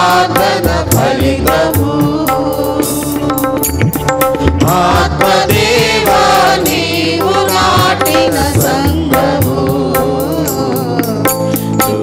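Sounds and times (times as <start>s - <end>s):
group singing devotional song: 0.0s - 3.5s, 4.4s - 12.0s
tabla strokes: 0.0s - 12.0s.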